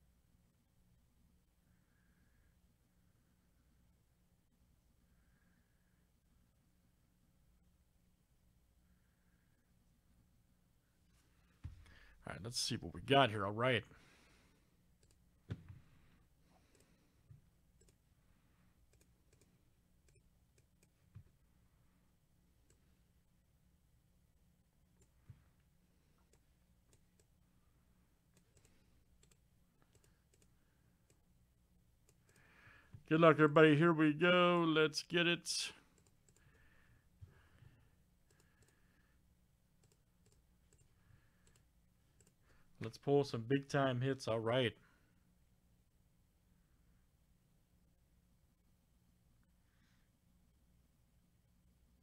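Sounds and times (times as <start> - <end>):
low background hum: 0.0 - 52.0
faint clicks: 15.0 - 15.2, 17.8 - 18.0, 18.9 - 21.2, 28.3 - 31.2, 35.9 - 36.6, 38.2 - 38.8, 39.8 - 42.9.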